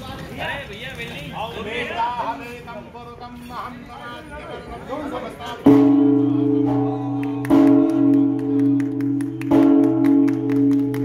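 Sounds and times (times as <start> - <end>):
large temple bell ringing: 5.6 - 11.0.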